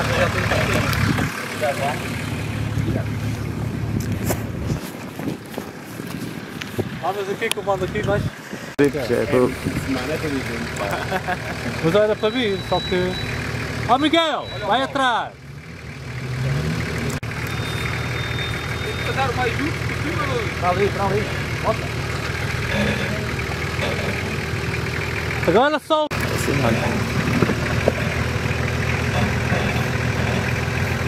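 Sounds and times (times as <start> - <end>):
onlookers talking: 0.0 - 3.6, 7.0 - 15.4, 18.6 - 31.0
vehicle engine idling: 0.0 - 31.0.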